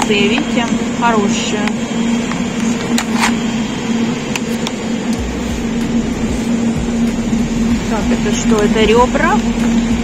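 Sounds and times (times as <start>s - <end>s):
low machine hum: 0.0s - 10.0s.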